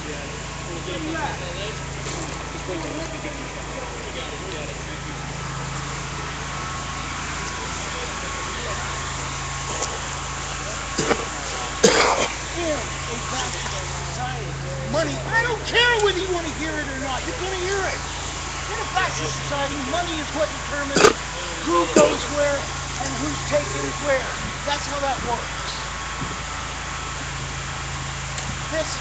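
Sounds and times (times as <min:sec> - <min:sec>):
indistinct distant voices: 0:00.0 - 0:29.0
low engine hum: 0:00.0 - 0:29.0
loud voice: 0:20.9 - 0:22.4.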